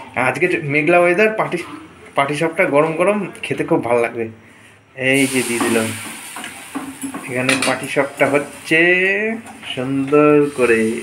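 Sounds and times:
batter sizzling in a pan: 5.2 - 11.0.

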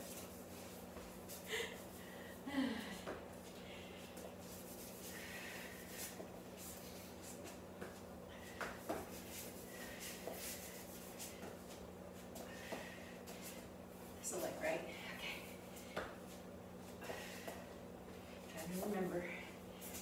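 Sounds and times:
steady low hum: 0.0 - 20.0
woman exhaling and grunting: 2.4 - 3.1.

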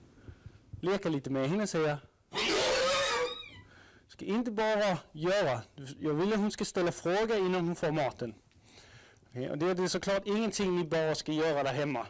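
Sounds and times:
horse squealing: 2.3 - 3.7.

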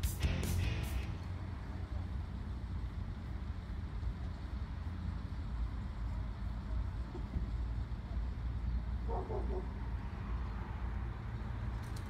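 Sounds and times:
low outdoor ambient rumble: 0.0 - 12.0.

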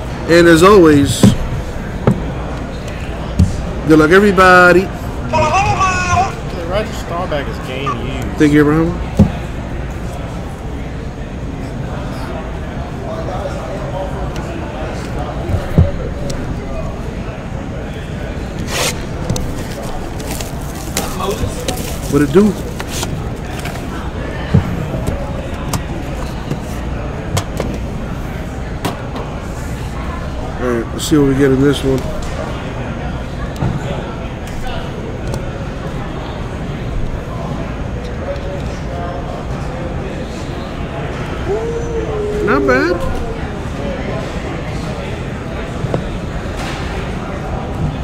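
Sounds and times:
faint voices: 0.0 - 48.0
room noise: 0.0 - 48.0
plastic shrink wrap tearing: 18.7 - 23.0.

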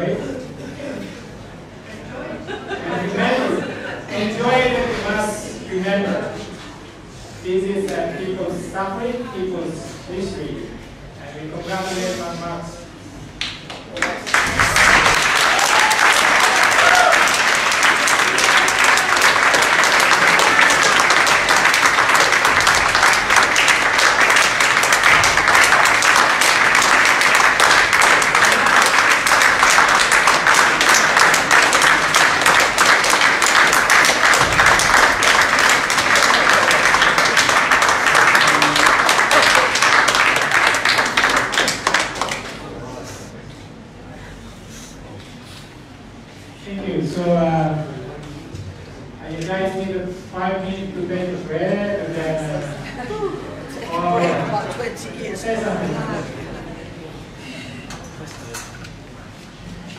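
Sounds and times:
audience applause: 14.0 - 42.8.

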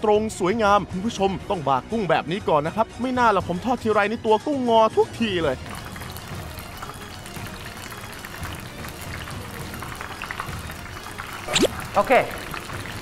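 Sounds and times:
background music: 0.0 - 13.0
shrimp sizzling in hot oil: 5.6 - 13.0.

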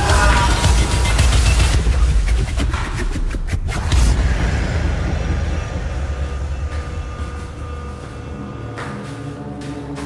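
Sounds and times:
deep rumbling low drone: 0.0 - 10.0.

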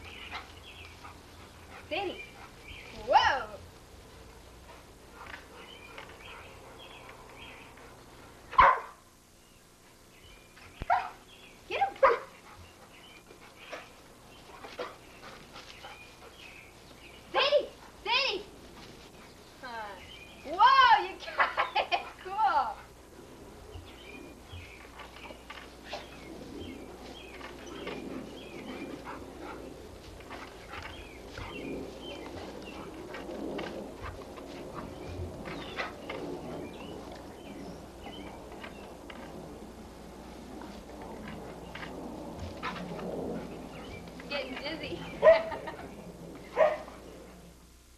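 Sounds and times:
dog barking: 8.5 - 9.0, 10.9 - 11.2, 12.0 - 12.3, 45.2 - 45.6, 46.6 - 46.9.

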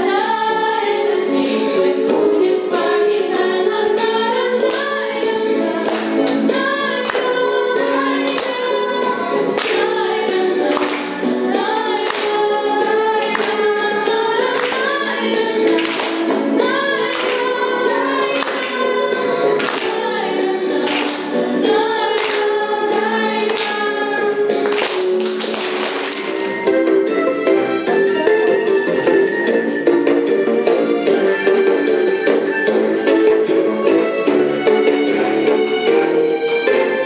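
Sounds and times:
girls singing together: 0.0 - 25.0
music with steady beat: 5.6 - 37.0.

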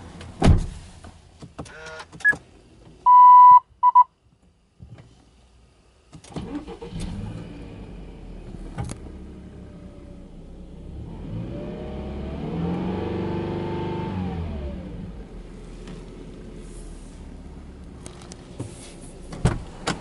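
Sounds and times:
car engine starting and revving: 6.3 - 20.0.

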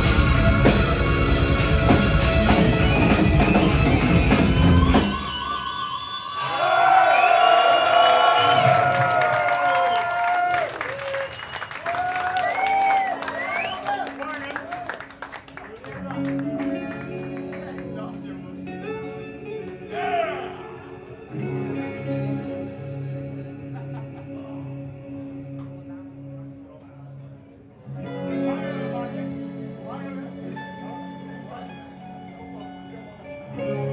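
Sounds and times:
electric guitars sustained notes: 0.0 - 6.3, 12.8 - 33.9
crowd cheering and clapping: 6.3 - 18.0.

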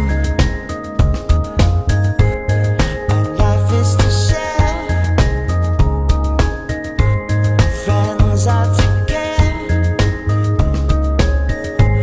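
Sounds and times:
pop song with drums: 0.0 - 12.0.

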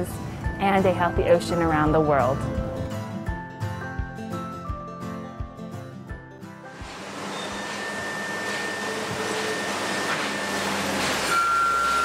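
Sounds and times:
wheel loader engine and machinery: 6.7 - 12.0
high steady whine: 6.8 - 12.0
reversing alarm beeping: 7.2 - 12.0.

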